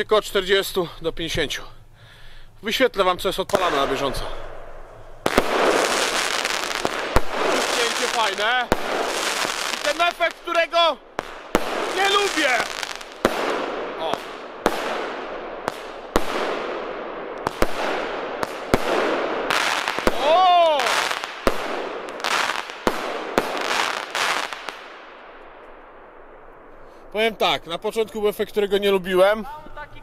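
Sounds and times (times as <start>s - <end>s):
crackling firework stars: 2.6s - 28.0s
firework shots: 3.5s - 27.3s.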